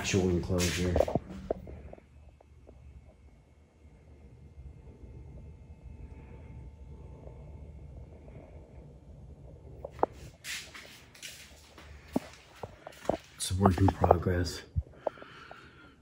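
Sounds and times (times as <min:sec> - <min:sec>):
handheld camera rumble: 0:00.0 - 0:03.2, 0:07.1 - 0:15.6.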